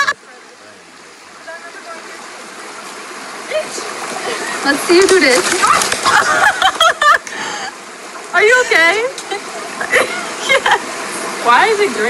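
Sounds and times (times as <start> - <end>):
voices speaking and calling out: 0.0 - 6.7, 7.5 - 12.0
stream rushing: 0.0 - 12.0.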